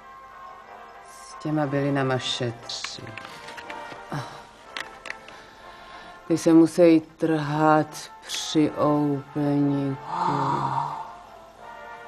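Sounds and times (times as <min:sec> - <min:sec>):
faint background music: 0:00.0 - 0:12.0
woman speaking: 0:01.2 - 0:03.2, 0:06.3 - 0:10.9.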